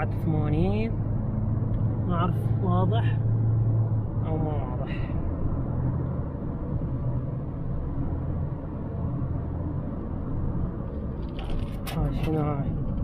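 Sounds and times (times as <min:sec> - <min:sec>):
car engine and tyres droning: 0:00.0 - 0:13.0.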